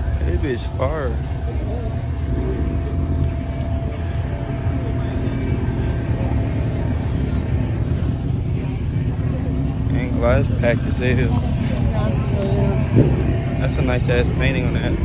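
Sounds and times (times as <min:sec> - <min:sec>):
car engine running: 0:00.0 - 0:15.0
faint crowd voices: 0:00.0 - 0:15.0.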